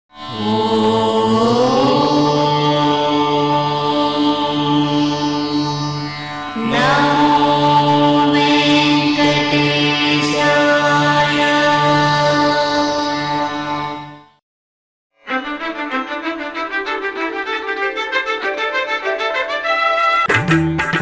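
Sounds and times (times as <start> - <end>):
steady drone: 0.3 - 13.7
chanted line: 6.5 - 14.2.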